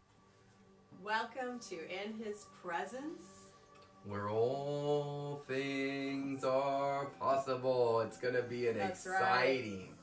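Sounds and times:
low voice chanting: 4.0s - 10.0s.

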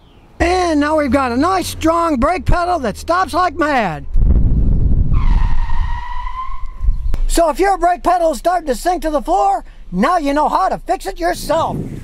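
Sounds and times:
low road rumble: 0.0s - 12.0s
car tyres squealing: 5.1s - 8.2s.

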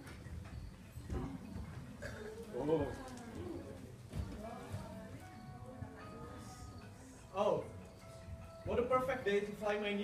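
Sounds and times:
low background murmur: 0.0s - 10.0s.

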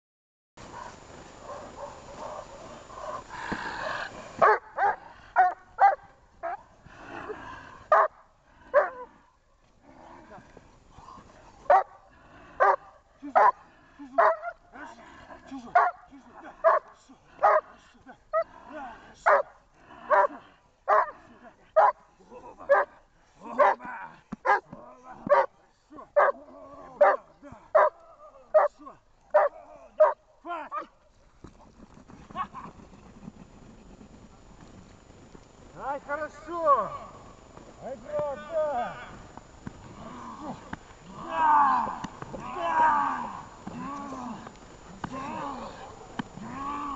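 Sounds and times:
dog barking: 0.7s - 3.2s, 4.4s - 6.6s, 7.9s - 9.1s, 11.7s - 12.0s, 12.6s - 13.6s, 14.2s - 14.6s, 15.8s - 16.0s, 16.6s - 17.7s, 19.3s - 19.5s, 20.1s - 21.2s, 21.8s - 22.0s, 22.7s - 22.9s, 23.6s - 23.8s, 24.4s - 24.6s, 25.3s - 25.5s, 26.2s - 26.4s, 27.0s - 27.2s, 27.8s - 28.0s, 28.6s - 28.8s, 29.4s - 30.2s.

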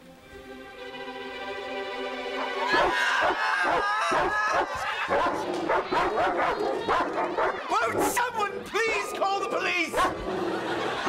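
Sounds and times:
large dog barking: 2.8s - 8.2s, 9.9s - 10.2s.

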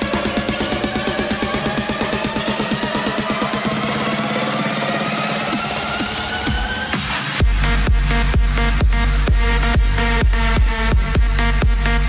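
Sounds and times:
deep bass: 0.0s - 12.0s
electronic dance music: 0.0s - 12.0s
rising synth line: 0.0s - 12.0s
fast even beat: 7.4s - 12.0s.

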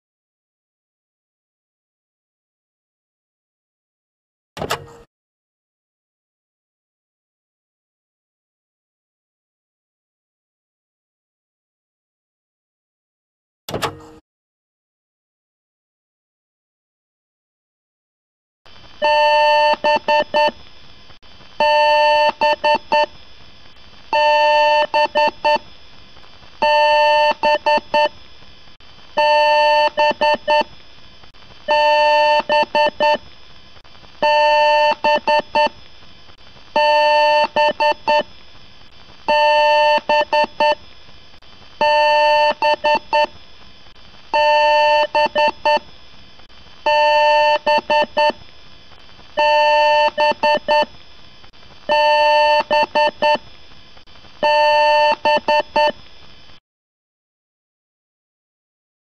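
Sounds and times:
faint steady hum: 18.7s - 56.6s
computer beep code: 36.8s - 38.2s, 44.4s - 45.8s, 46.9s - 48.3s, 49.4s - 50.9s, 51.9s - 53.4s.

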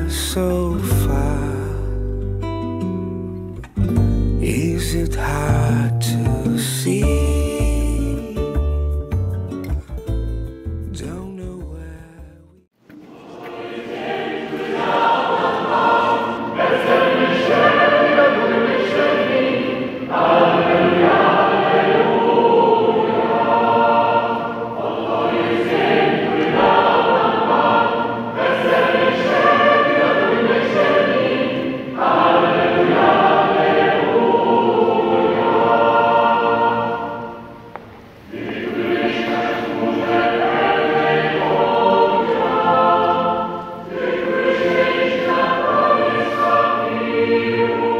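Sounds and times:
choir singing held chords: 12.8s - 47.9s.

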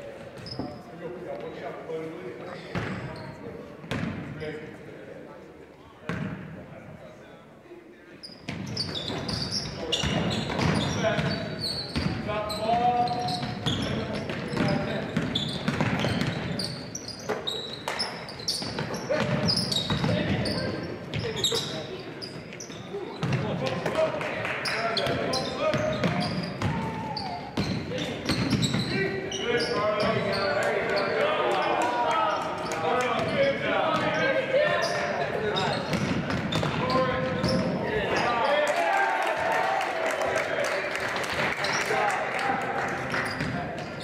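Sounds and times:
sneaker squeaks on hardwood floor: 0.3s - 1.6s, 8.2s - 23.5s, 24.6s - 38.4s, 43.2s - 44.0s
basketball bouncing: 13.4s - 16.6s, 23.2s - 23.5s, 35.9s - 37.7s.

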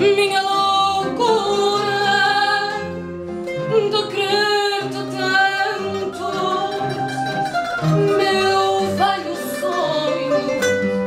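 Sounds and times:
woman singing: 0.0s - 10.8s
guitar accompaniment: 0.0s - 11.0s.

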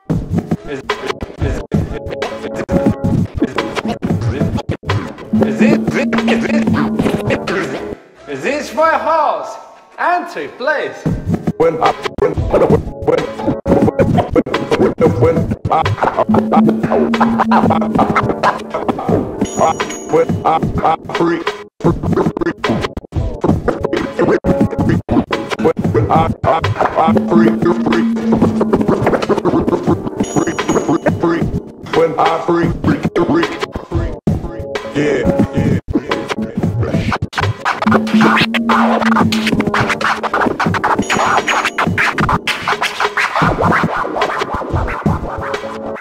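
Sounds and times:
record scratching: 0.1s - 8.0s, 11.3s - 19.7s, 21.8s - 46.0s
steady held note: 5.3s - 8.0s, 16.3s - 18.9s, 27.1s - 29.7s, 37.8s - 40.4s.

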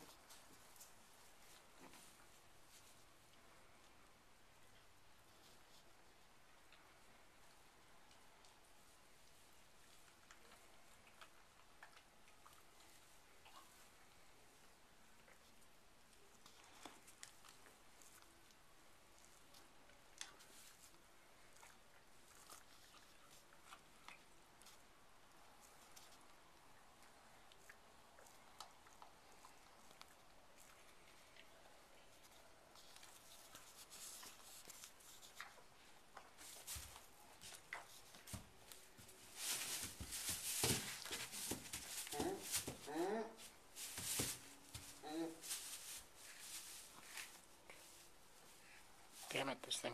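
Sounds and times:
rustling straw bedding: 36.4s - 49.7s.

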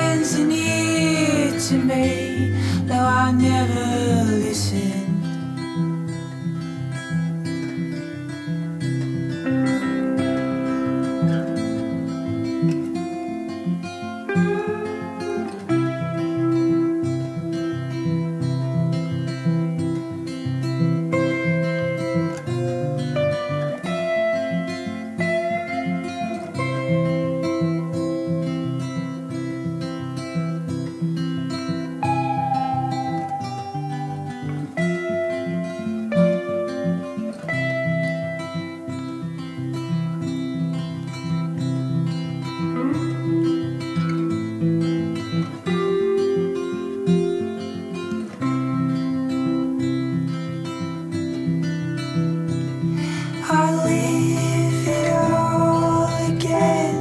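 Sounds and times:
melodic electric guitar lines: 0.0s - 57.0s
strummed acoustic guitar: 0.0s - 57.0s.

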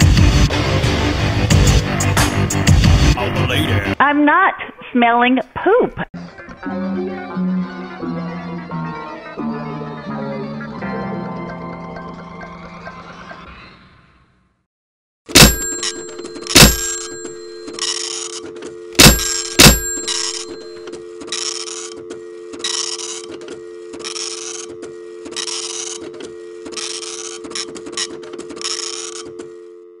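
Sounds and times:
telephone handset clunks: 15.4s - 20.8s
dial tone: 15.4s - 30.0s.

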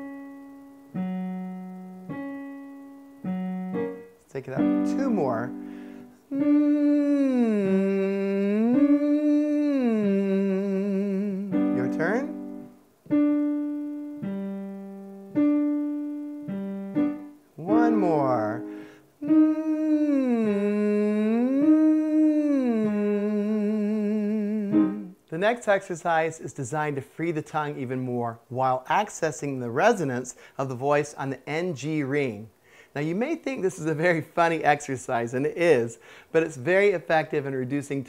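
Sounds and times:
piano notes: 0.0s - 23.9s, 24.5s - 25.2s
man singing vocal exercise: 6.2s - 12.4s, 17.6s - 25.3s.

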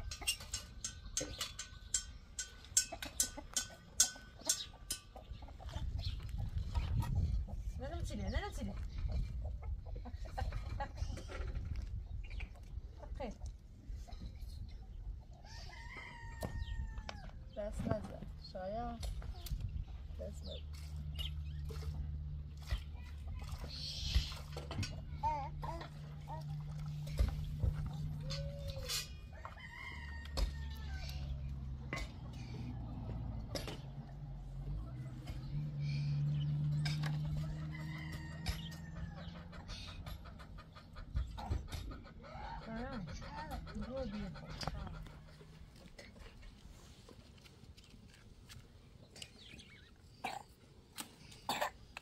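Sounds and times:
rooster crowing: 29.3s - 31.1s, 37.4s - 39.3s.

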